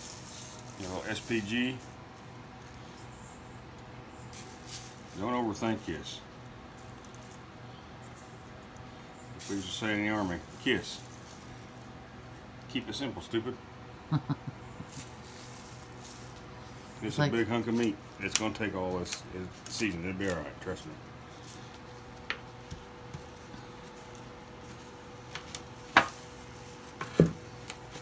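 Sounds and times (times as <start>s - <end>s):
seasoning pouring from metal bowl: 0.0s - 1.8s
man laughing: 14.0s - 15.1s.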